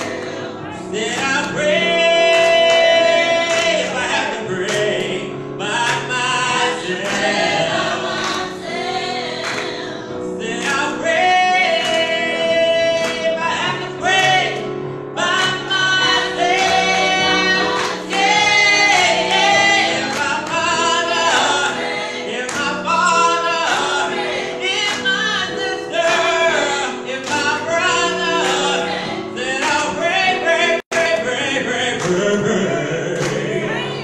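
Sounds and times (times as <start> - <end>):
men and women singing gospel: 0.0 - 34.0.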